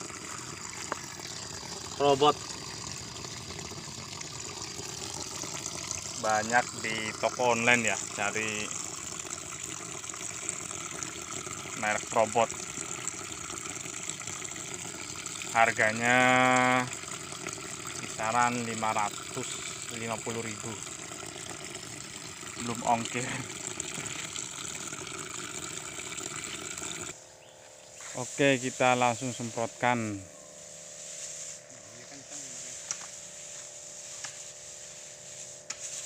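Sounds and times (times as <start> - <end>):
tap water running into a tank: 0.0 - 27.2
electric pump humming: 0.0 - 36.0
sprayer lance spraying: 30.6 - 36.0.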